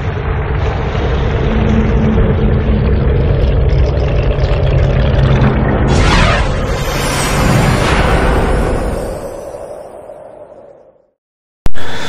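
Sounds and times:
mechanical engine rumble: 0.0s - 7.3s
sudden burst: 5.4s - 9.2s.

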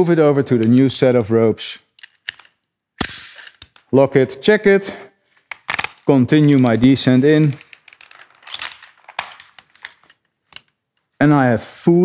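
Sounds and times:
metal clicks of climbing hardware: 1.9s - 2.6s.

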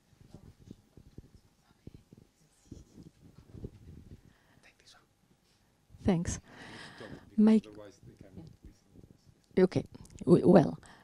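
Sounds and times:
faint speech and whispering: 0.2s - 5.2s, 7.0s - 9.4s.

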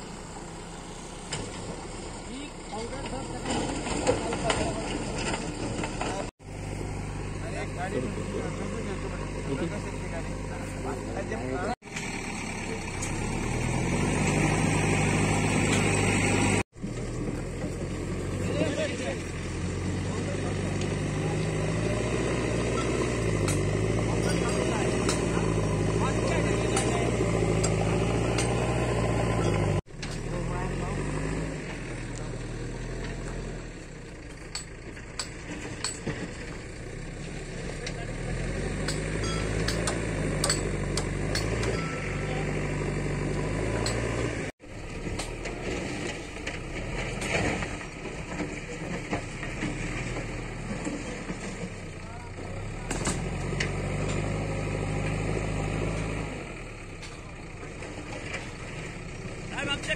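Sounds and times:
engine running: 0.0s - 59.9s.

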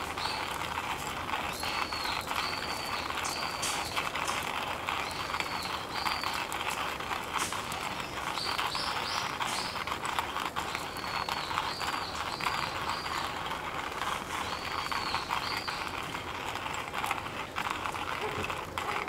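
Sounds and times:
campfire crackling: 0.0s - 19.0s.

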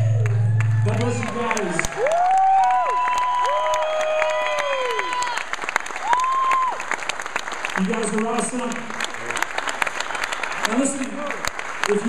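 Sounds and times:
audience applauding and cheering: 0.0s - 12.0s.

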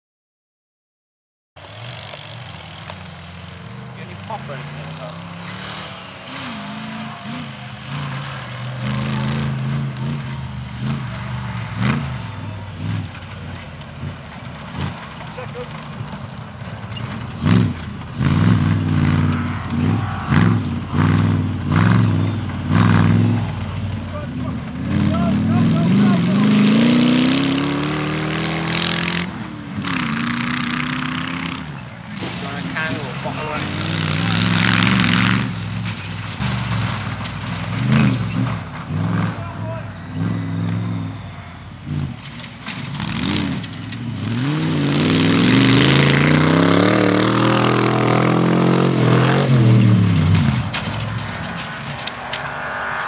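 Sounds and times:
car engine revving: 1.6s - 53.0s.

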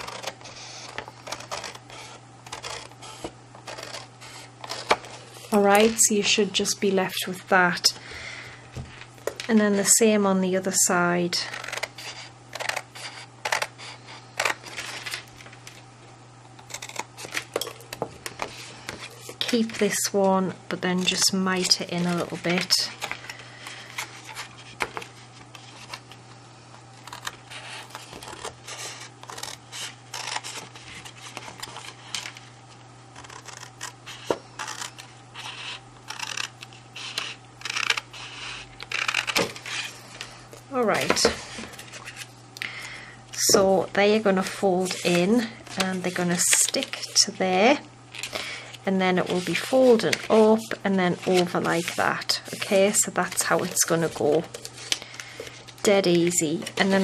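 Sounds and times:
faint steady hum: 0.0s - 57.0s
scissors snipping cardstock: 33.2s - 39.8s.

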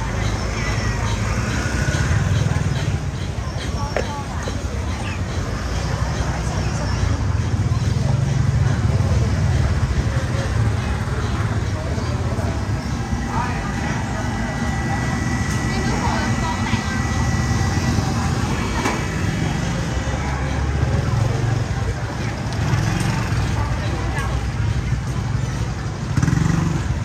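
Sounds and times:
chatter of many voices: 0.0s - 27.0s
motorbike engines rumbling: 0.0s - 27.0s.

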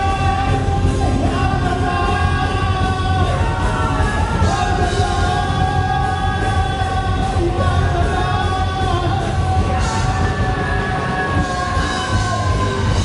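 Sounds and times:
heavy metal band playing: 0.0s - 13.0s
person singing: 0.0s - 13.0s.

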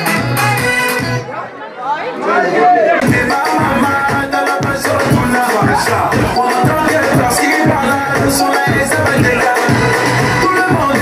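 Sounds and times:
dance music: 0.0s - 1.3s, 2.3s - 11.0s
people chattering in a hall: 0.0s - 11.0s.

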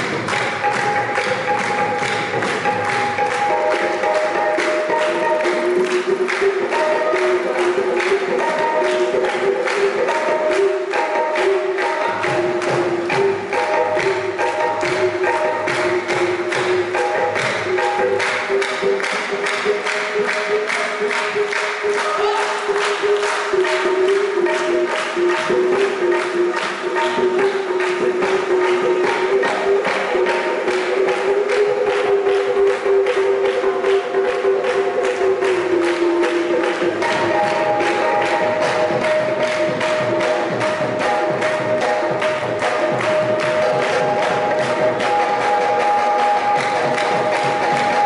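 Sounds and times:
group handclaps: 0.0s - 48.0s
tabla: 0.0s - 48.0s.

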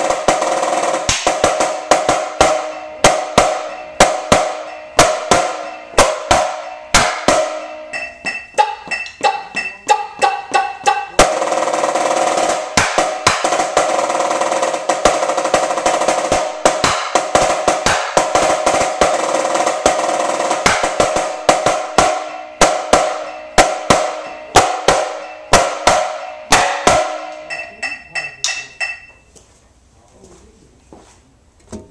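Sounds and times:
marching snare drum roll: 0.0s - 7.8s, 11.2s - 27.5s.

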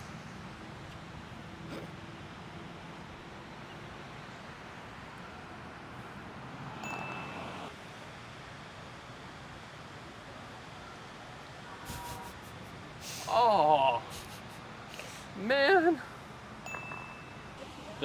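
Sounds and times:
outdoor background noise: 0.0s - 18.0s
brief high ringing tone: 6.8s - 7.6s, 16.7s - 17.6s.

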